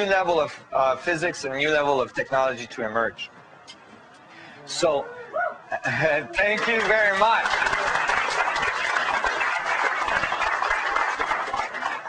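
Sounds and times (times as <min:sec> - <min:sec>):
audience applauding: 0:06.3 - 0:12.0.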